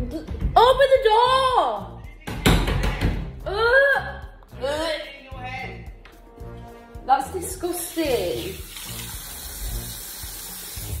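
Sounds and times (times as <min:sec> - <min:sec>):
shower water spraying: 0:07.7 - 0:11.0.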